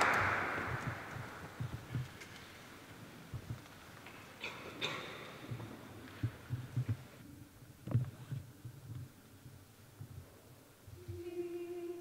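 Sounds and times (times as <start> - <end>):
soft low thuds and shuffles: 5.4 - 10.6.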